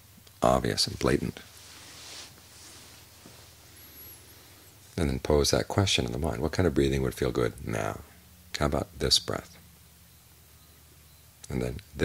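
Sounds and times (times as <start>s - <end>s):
low hiss and hum: 0.0s - 12.0s
faint high-pitched whistle: 10.1s - 11.3s.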